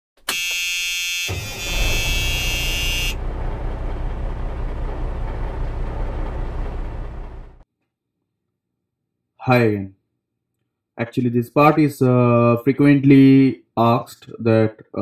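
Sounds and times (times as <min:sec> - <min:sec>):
buzzing electronic tone: 0:00.3 - 0:03.2
low rumble: 0:02.7 - 0:07.6.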